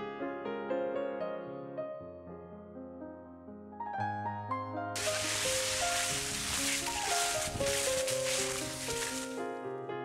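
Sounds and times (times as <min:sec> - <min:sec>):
piano music: 0:01.1 - 0:09.6
dry leaves crunching underfoot: 0:05.0 - 0:09.4.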